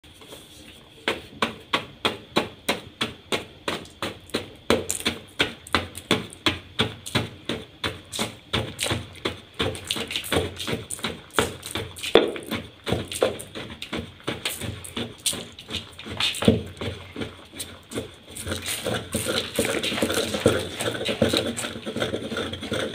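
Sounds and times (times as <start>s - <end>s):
stick pounding chalk in a bowl: 1.0s - 22.9s.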